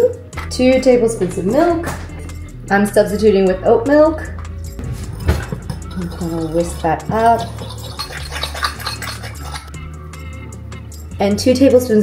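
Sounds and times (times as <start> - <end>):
spoon whisking batter in a bowl: 6.0 - 9.8.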